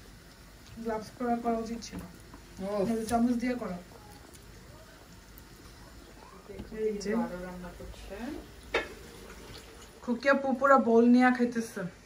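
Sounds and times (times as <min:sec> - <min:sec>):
food mixed by hand in bowl: 0:00.6 - 0:10.1.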